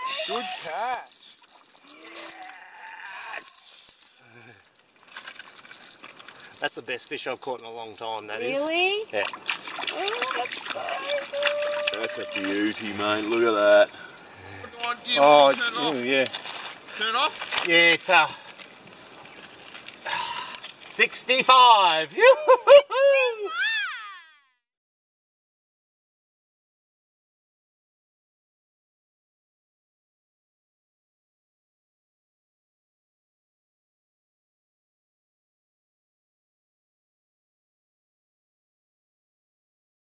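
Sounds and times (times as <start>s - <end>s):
insects chirping in a trill: 0.0s - 16.1s.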